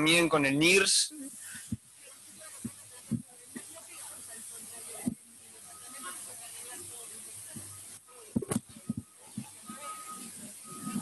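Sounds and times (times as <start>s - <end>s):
high microphone hiss: 0.0s - 11.0s.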